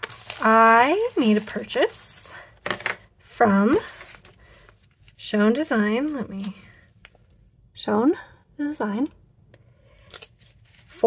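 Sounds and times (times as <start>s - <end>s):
paper rustling: 0.0s - 2.9s, 3.7s - 5.2s, 10.1s - 11.0s.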